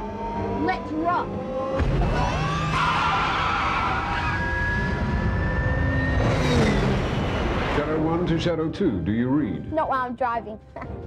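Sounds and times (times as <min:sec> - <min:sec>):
futuristic car accelerating: 0:00.0 - 0:08.6
rush of noise: 0:02.3 - 0:08.4
thin rising whine: 0:02.4 - 0:08.3.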